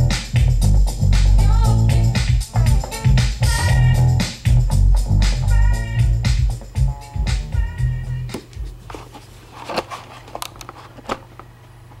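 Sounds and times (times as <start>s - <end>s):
hip-hop beat with heavy bass: 0.0s - 8.4s
knocks and rustles of handling: 8.3s - 11.5s.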